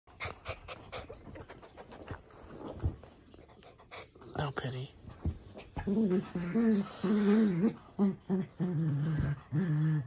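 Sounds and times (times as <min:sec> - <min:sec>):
dog panting: 0:00.1 - 0:07.9.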